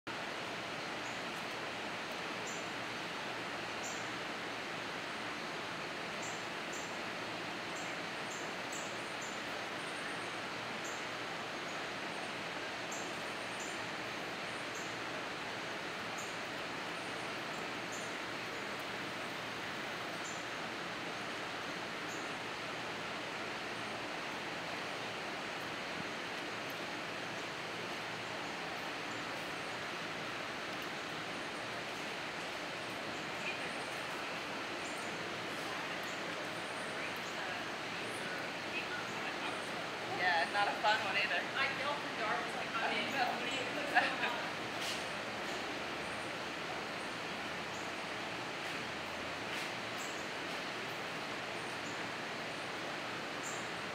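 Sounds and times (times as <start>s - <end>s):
outdoor background rush: 0.0s - 53.9s.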